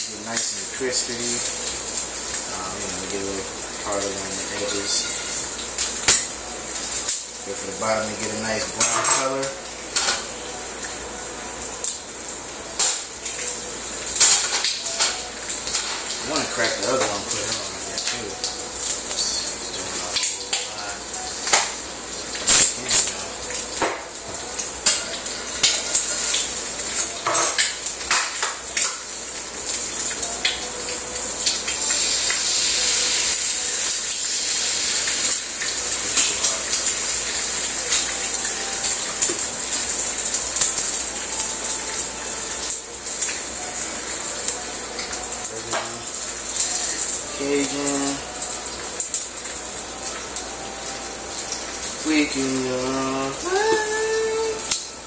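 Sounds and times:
eggs sizzling in a skillet: 0.0s - 55.0s.

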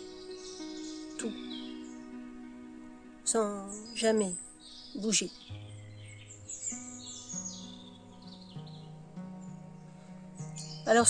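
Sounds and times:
small birds chirping: 0.0s - 11.0s
soft ambient music: 0.0s - 11.0s.

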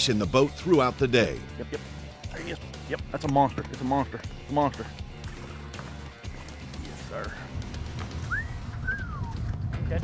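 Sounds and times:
background music with low bass: 0.0s - 10.0s.

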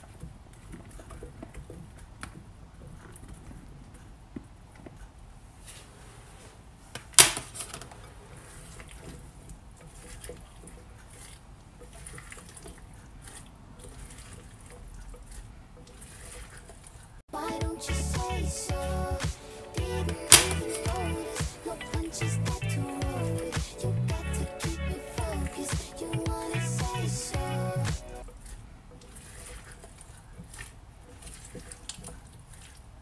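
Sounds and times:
soft rustles and clicks: 0.0s - 17.2s
music: 17.4s - 28.2s.

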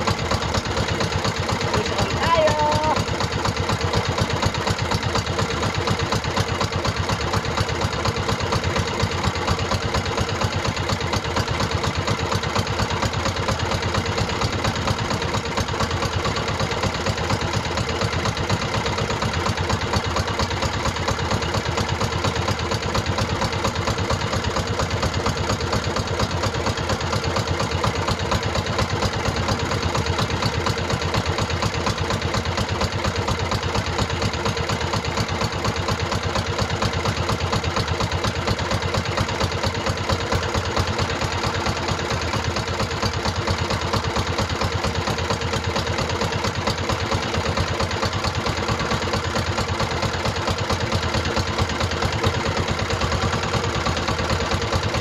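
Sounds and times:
boat engine idling: 0.0s - 55.0s.

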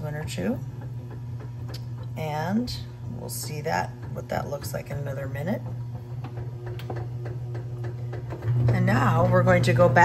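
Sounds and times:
bread machine motor hum: 0.0s - 10.0s.

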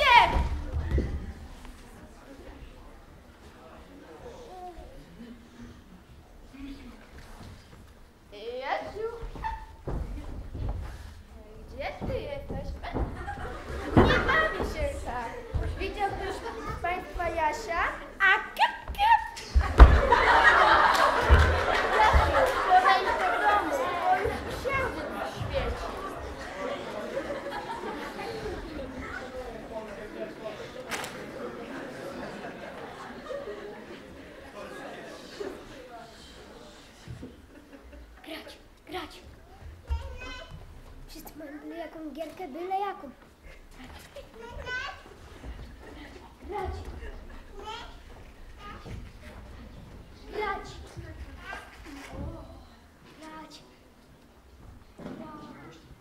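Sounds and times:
audience laughing: 13.0s - 17.1s, 19.4s - 36.2s
thump: 19.5s - 20.2s.

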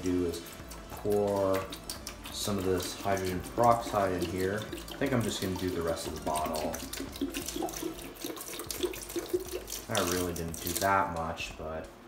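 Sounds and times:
liquid gurgling: 0.0s - 11.5s
liquid pouring and splashing: 0.0s - 11.5s
person speaking: 2.3s - 6.9s, 9.9s - 12.0s.

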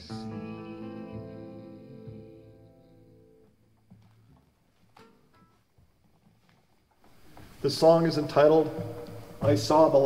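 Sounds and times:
acoustic guitar and upright bass chord: 0.0s - 3.4s.

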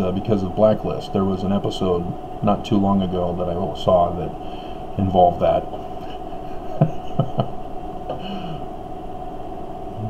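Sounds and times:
steady room hum: 0.0s - 10.0s
man chuckling under his breath: 5.8s - 8.7s
man humming hmm: 7.3s - 8.8s.

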